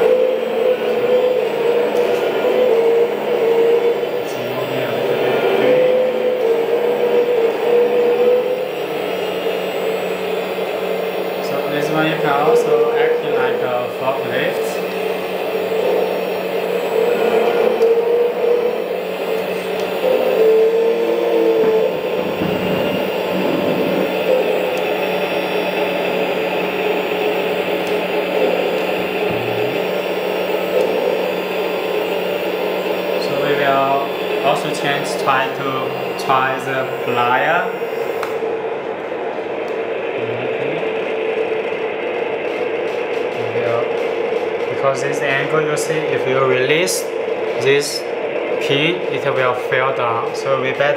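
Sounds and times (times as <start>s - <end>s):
hydraulic pump motor whine: 0.0s - 50.9s.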